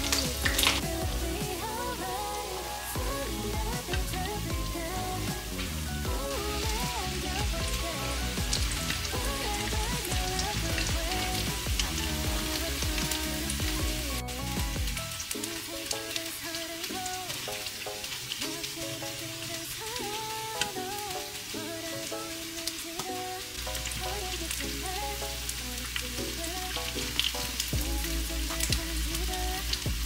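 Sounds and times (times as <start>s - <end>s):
background music: 0.0s - 30.0s.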